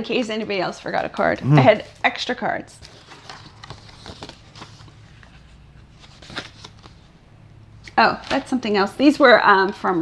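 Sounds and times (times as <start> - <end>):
paper rustling: 2.8 - 7.1.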